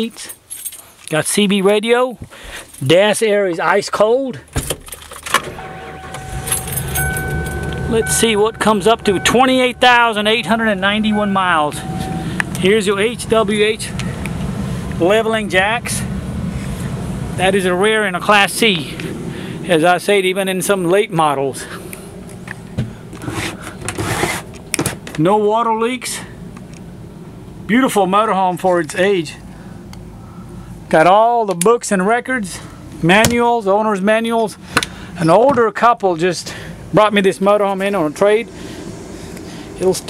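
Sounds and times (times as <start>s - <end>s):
keys jangling: 4.8s - 7.9s
engine idling: 5.4s - 19.8s
thin steady whine: 5.4s - 23.3s, 36.6s - 40.0s
cabinet door rustling scrape: 23.2s - 24.5s.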